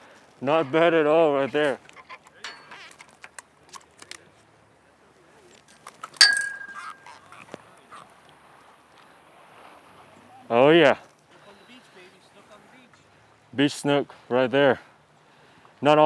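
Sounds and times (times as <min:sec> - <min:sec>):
sharp metallic clink: 0:02.4 - 0:02.8, 0:06.2 - 0:07.2.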